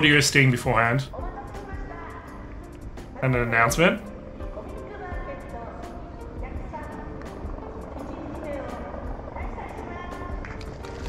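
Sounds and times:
distant music: 0.0s - 11.0s.

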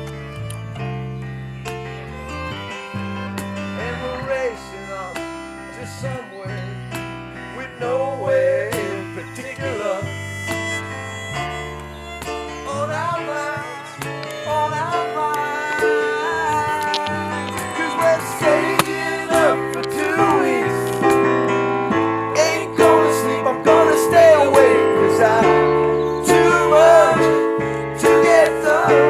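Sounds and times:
electric guitar picked: 0.0s - 29.0s
held bass notes: 0.0s - 29.0s
wavering fiddle melody: 0.0s - 29.0s.

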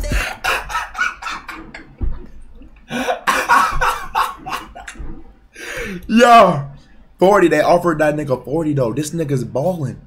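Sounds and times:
rap beat: 0.0s - 0.7s
man laughing hard: 0.0s - 1.6s, 2.9s - 5.0s
man coughing: 2.9s - 4.8s.

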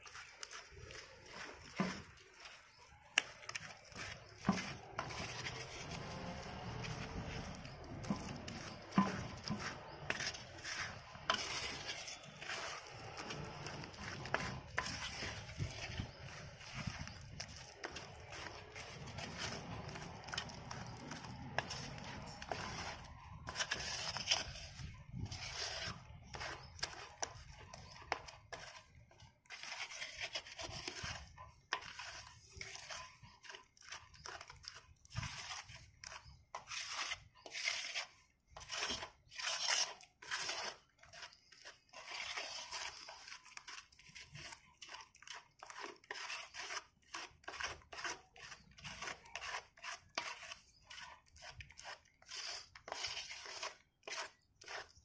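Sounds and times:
cement squelching and scraping: 0.0s - 55.0s.

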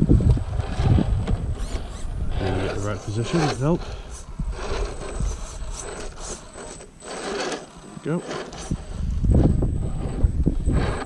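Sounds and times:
electric motor and gears whirring: 0.0s - 11.0s
tyres scrabbling and clicking on rock: 0.2s - 11.0s.

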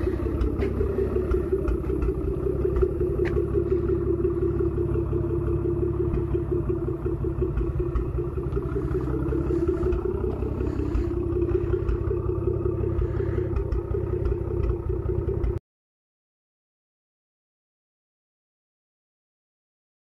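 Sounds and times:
car engine idling: 0.0s - 15.6s.

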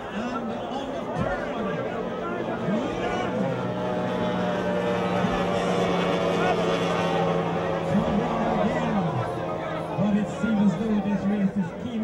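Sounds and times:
powerboat outboard engine running: 0.0s - 12.0s.

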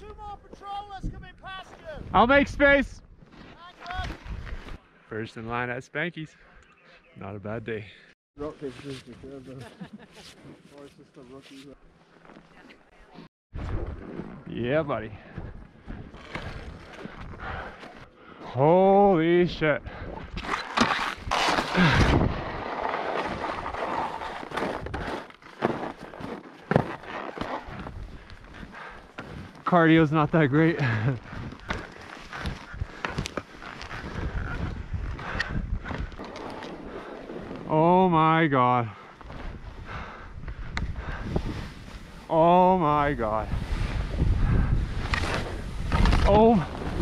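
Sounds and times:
skis scraping over snow: 21.3s - 28.0s
wind buffeting microphone: 30.8s - 37.7s, 39.2s - 42.2s, 43.4s - 47.0s.

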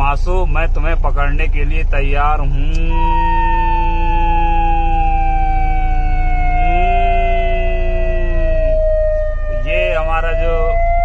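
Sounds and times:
low siren tone: 2.6s - 11.0s
police siren wailing: 2.7s - 11.0s.

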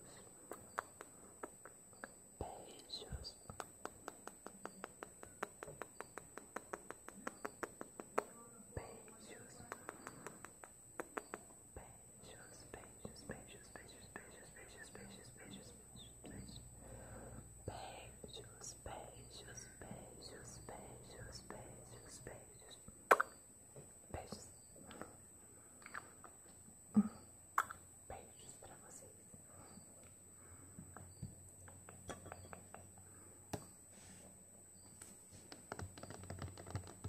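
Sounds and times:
breathy whisper: 0.0s - 22.9s, 24.1s - 25.2s, 28.1s - 33.4s
wet lip and tongue clicks: 0.4s - 2.1s, 3.5s - 8.3s, 9.6s - 11.5s, 23.1s - 23.4s, 25.8s - 26.4s, 27.6s - 27.8s, 31.6s - 32.9s.

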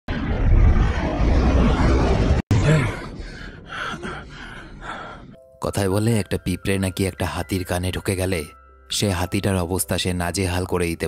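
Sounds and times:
jet airliner rumble: 0.1s - 5.4s
man gasping and breathing hard: 2.6s - 5.4s.

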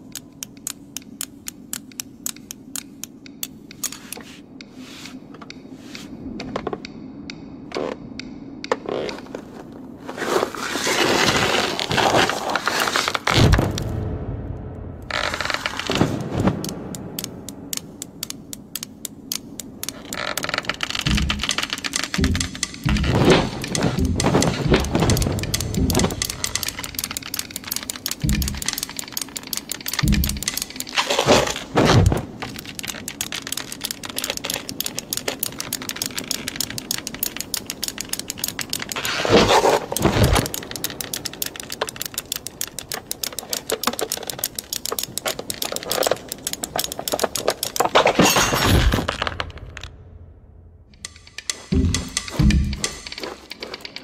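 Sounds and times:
knitting needles clicking: 0.0s - 9.4s, 15.0s - 48.3s, 50.9s - 54.0s
music: 21.1s - 28.9s, 51.0s - 54.0s.

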